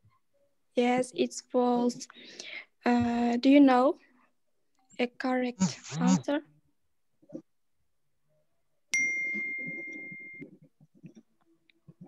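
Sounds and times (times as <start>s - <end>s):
electronic chime ding: 9.0s - 10.5s.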